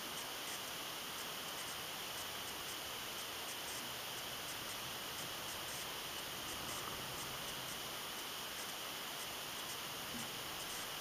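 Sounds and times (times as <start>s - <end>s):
constant high buzz: 0.0s - 11.0s
steady hiss: 0.0s - 11.0s.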